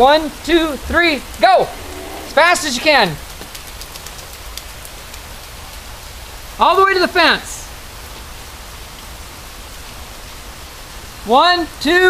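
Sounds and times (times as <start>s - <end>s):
rain falling on lawn and patio: 0.0s - 12.0s.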